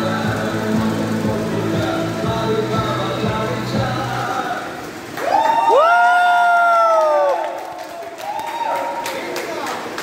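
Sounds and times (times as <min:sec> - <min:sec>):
people cheering and whooping: 0:05.0 - 0:09.9
long loud cry: 0:05.2 - 0:09.1.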